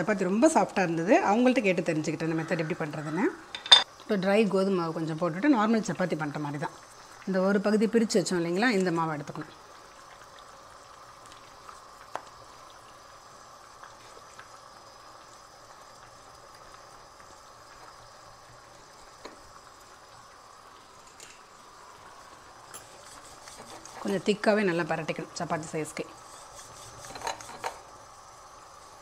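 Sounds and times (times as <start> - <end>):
faint steady hiss: 0.0 - 29.0.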